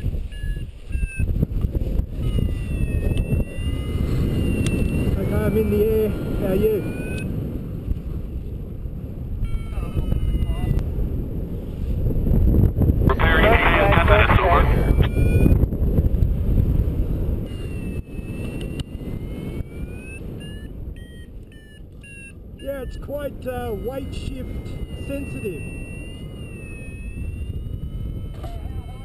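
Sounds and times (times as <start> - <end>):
wind rush over microphone: 0.0 - 29.0
faint electronic beeps: 2.2 - 7.3, 17.5 - 29.0.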